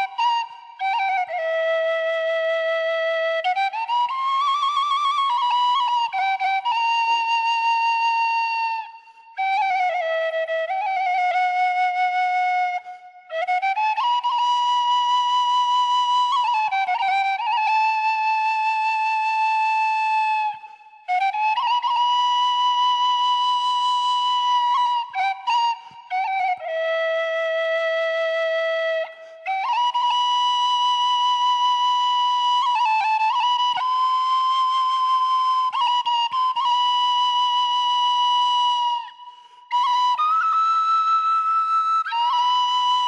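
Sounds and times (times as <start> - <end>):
wooden flute playing solo: 0.0 - 43.0.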